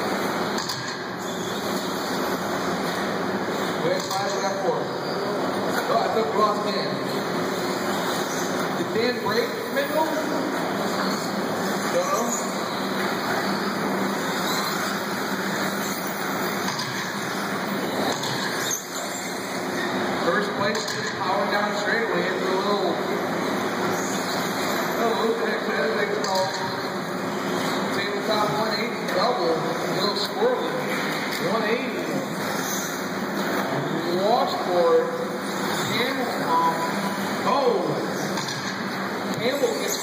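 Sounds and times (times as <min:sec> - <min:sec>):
rc car motors and tyres: 0:00.0 - 0:05.3, 0:09.4 - 0:20.0, 0:23.4 - 0:25.3, 0:32.0 - 0:34.4.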